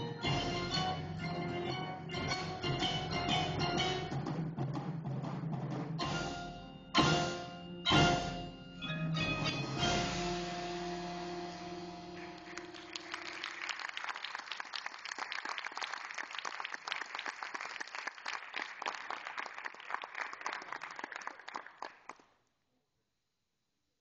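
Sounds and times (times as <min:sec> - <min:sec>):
percussion ensemble notes ringing: 0:00.0 - 0:13.6
audience applauding: 0:12.2 - 0:22.3.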